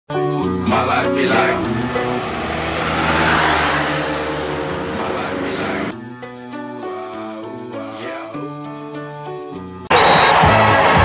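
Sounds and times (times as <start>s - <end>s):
low music track: 0.2s - 9.6s
rushing car-like noise: 1.4s - 6.0s.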